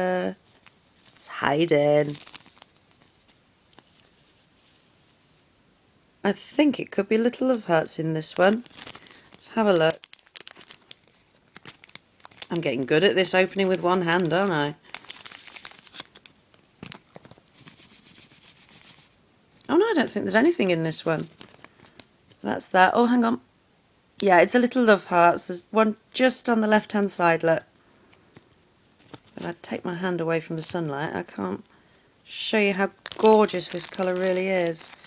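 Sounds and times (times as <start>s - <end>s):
plastic bag crinkling: 0.3s - 5.4s, 8.2s - 19.2s, 21.0s - 22.1s, 32.6s - 35.0s.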